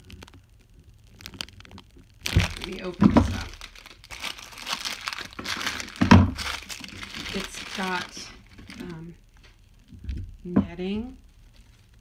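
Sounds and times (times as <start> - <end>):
plastic packaging crinkling: 0.0 - 9.6.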